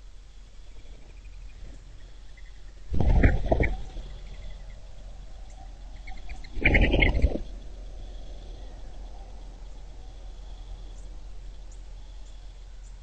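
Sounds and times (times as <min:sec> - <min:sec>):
faint background hiss: 0:00.0 - 0:13.0.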